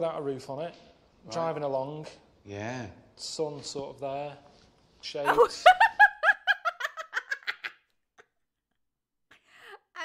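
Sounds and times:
woman giggling: 0:05.3 - 0:08.4.

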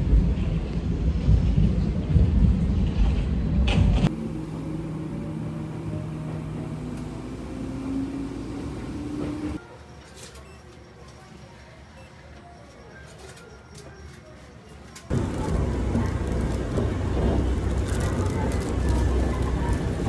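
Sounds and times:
train carriage rumble: 0:00.0 - 0:10.1, 0:13.7 - 0:20.0
heavy low rumble: 0:15.1 - 0:20.0.

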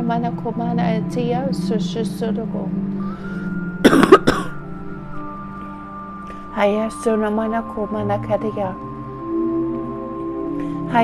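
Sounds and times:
background music of held notes: 0:00.0 - 0:11.0
person coughing: 0:03.8 - 0:04.6.

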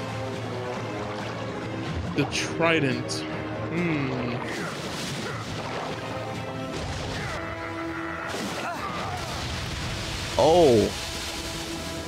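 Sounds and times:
action music: 0:00.0 - 0:12.0.

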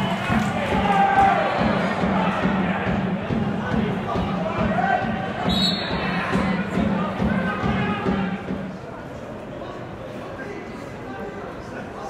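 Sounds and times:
crowd shouting: 0:00.0 - 0:08.6
low rhythmic thumps: 0:00.0 - 0:08.9
referee whistle blast: 0:05.5 - 0:06.0.

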